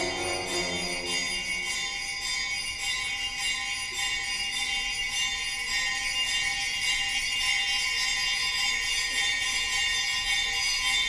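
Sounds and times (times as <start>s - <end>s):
small bells jingling: 0.0s - 11.0s.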